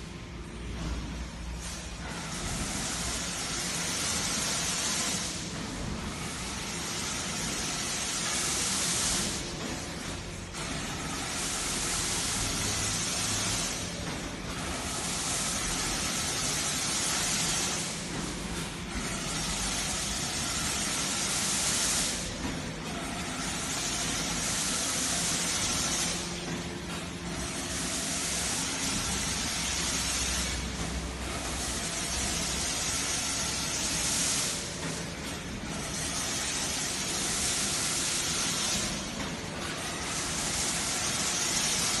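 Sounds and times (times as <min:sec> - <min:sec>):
machinery low hum: 0:00.0 - 0:42.0
loud machinery hiss: 0:00.8 - 0:26.6, 0:27.3 - 0:35.0.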